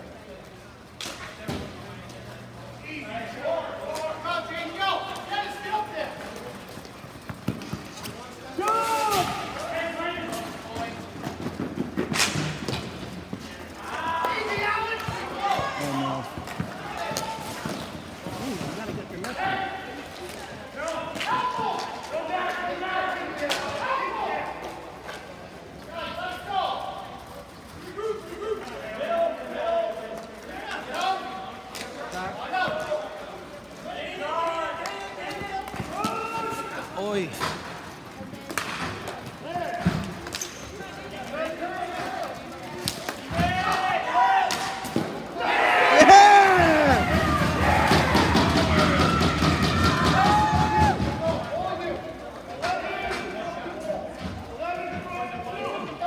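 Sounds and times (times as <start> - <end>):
people shouting and chatting: 0.0 - 56.0.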